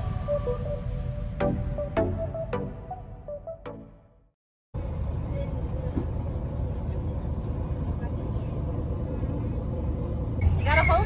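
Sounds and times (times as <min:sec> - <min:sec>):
bus engine rumble: 0:00.0 - 0:02.0, 0:04.8 - 0:11.0
voices: 0:10.4 - 0:11.0.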